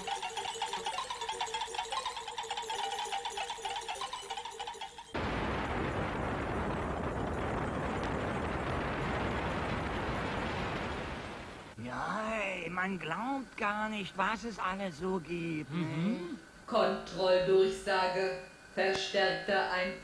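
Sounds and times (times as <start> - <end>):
rocket lift-off roar: 5.2 - 11.8.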